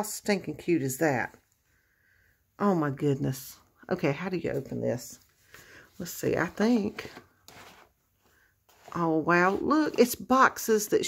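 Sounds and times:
papery scrape of cardstock box: 6.4 - 10.2.

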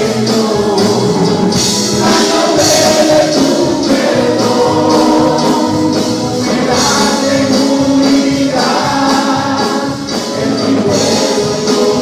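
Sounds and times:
band playing worship song: 0.0 - 12.0
bright percussion accent: 0.0 - 12.0
group of voices singing: 0.0 - 12.0.

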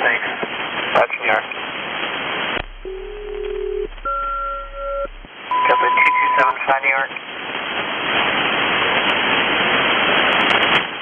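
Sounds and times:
paired radio tones: 2.6 - 6.8
man's voice over radio: 5.6 - 7.1.

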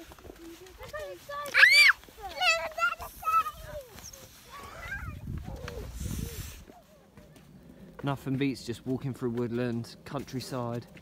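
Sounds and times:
wind rumble: 2.9 - 6.7
man speaking: 8.0 - 10.9.

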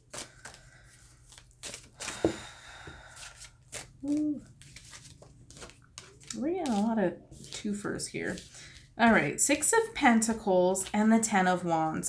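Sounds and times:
cards being shuffled: 0.1 - 2.3, 3.2 - 9.2
person humming: 4.0 - 4.5.

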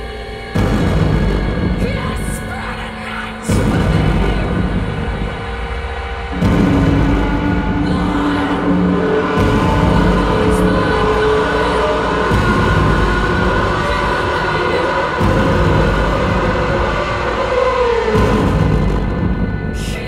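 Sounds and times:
singer vocalising into microphone: 0.0 - 5.6, 7.1 - 18.4
heavy low rumbling drone: 0.0 - 20.0.

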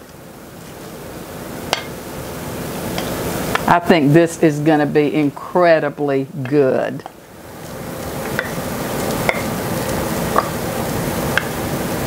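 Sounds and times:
soup pot hissing: 0.0 - 4.0, 7.2 - 12.0.

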